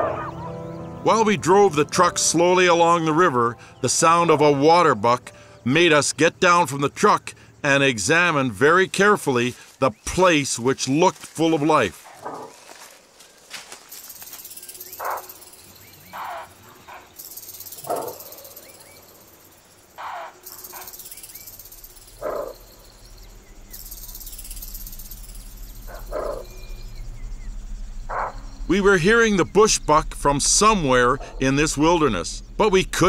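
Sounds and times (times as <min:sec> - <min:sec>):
bushbuck barking: 0:00.0 - 0:00.8, 0:12.0 - 0:13.0, 0:14.0 - 0:33.0.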